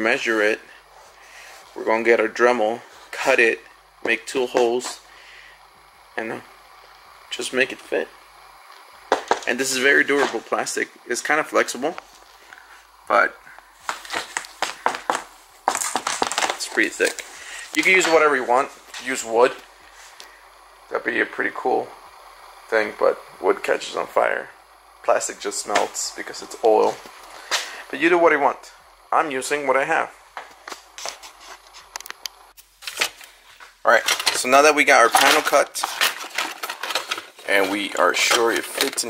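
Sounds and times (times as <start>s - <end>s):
plastic rustling scrape: 35.7s - 37.8s.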